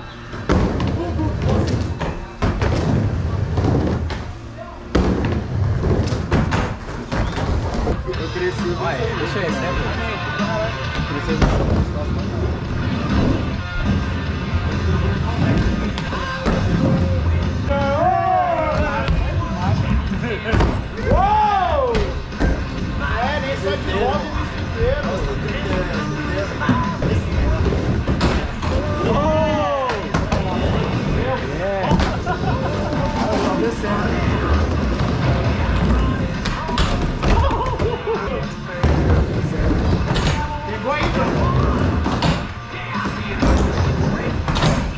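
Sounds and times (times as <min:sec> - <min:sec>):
music playing: 0:07.4 - 0:44.9
skateboard wheels rolling on wood: 0:11.0 - 0:17.7, 0:21.1 - 0:44.9.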